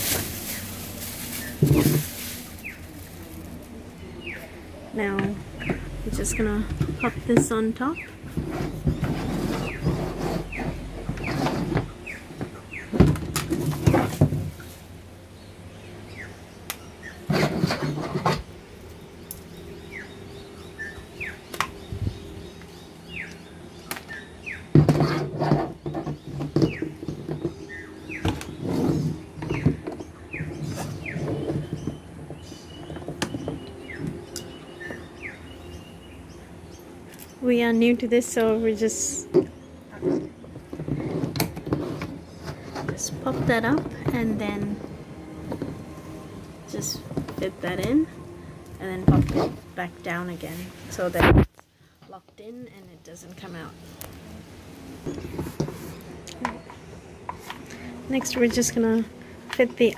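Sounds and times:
hose being handled: 0.0 - 4.0.

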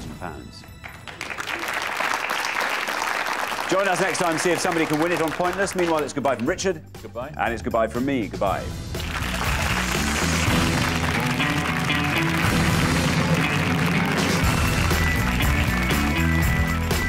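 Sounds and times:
theme music with moving bass line: 4.4 - 17.0.

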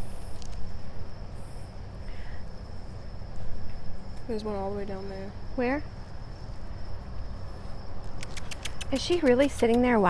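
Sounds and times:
steady low rumble: 0.0 - 9.3
high insect drone: 0.0 - 10.0
sharp clicks: 8.0 - 10.0.

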